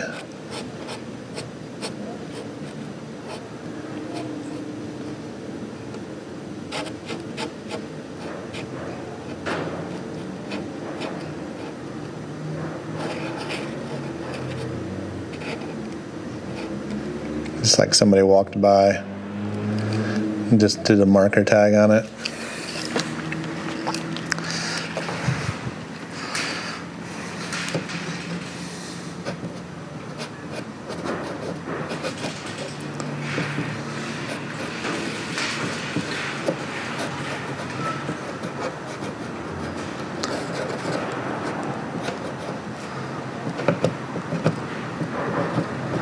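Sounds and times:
marker scratching on wood: 0.0s - 5.2s, 6.6s - 17.9s, 22.0s - 46.0s
steady mechanical hum: 0.0s - 46.0s.

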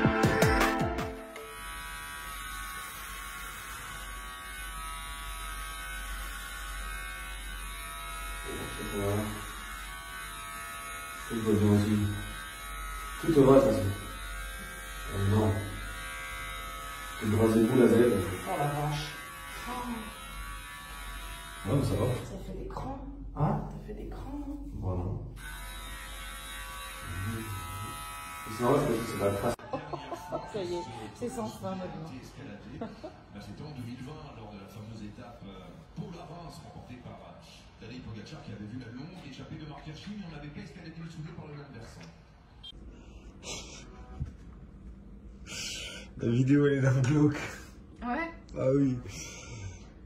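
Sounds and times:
electric hair clippers buzzing: 1.2s - 22.3s, 25.4s - 29.6s.

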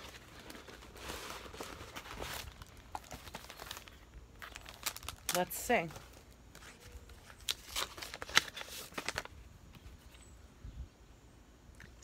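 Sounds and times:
paper rustling and crinkling: 0.0s - 10.2s.

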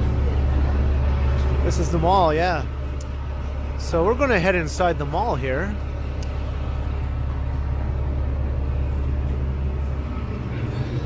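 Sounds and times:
low rumble of street traffic: 0.0s - 11.0s.

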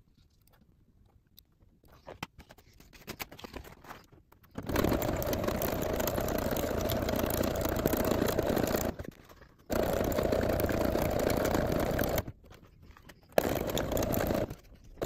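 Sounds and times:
sewing machine stitching: 4.6s - 15.0s.

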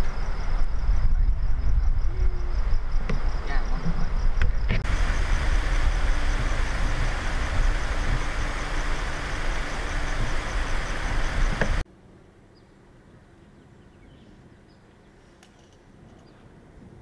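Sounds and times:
motor vehicle rumbling: 0.0s - 11.8s.

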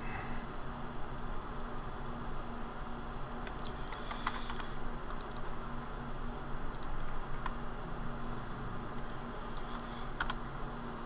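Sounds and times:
steady low hum: 0.0s - 11.0s
computer keyboard keys tapped: 3.4s - 5.5s, 6.7s - 7.6s, 9.0s - 10.4s.

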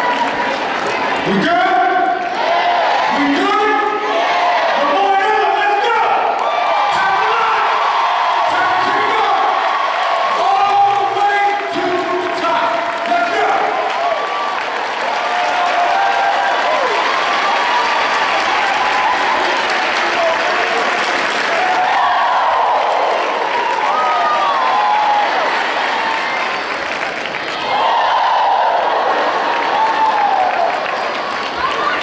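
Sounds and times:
audience applauding: 0.0s - 2.4s, 6.3s - 32.0s
voices calling out and cheering: 0.0s - 32.0s.

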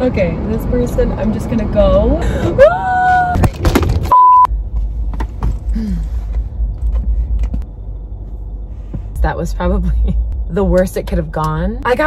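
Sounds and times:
car interior rumble while driving: 0.0s - 12.0s
woman crying out: 2.4s - 3.5s
steady one-tone censor beep: 4.1s - 4.5s.

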